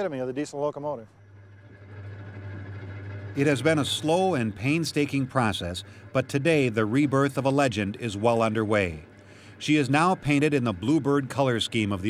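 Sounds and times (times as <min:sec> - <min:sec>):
diesel engine idling: 0:01.2 - 0:12.0.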